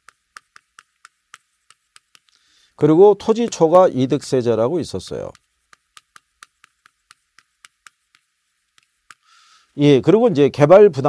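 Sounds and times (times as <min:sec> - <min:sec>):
chalk tapping on chalkboard: 0:00.0 - 0:09.4.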